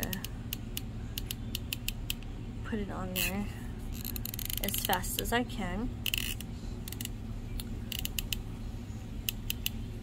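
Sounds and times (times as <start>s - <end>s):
glue gun trigger clicks and creaks: 4.0s - 4.9s, 6.0s - 7.1s.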